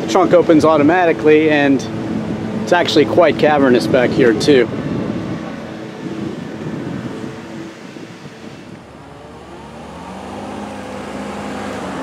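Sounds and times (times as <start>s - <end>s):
car engine driving up: 0.0s - 12.0s.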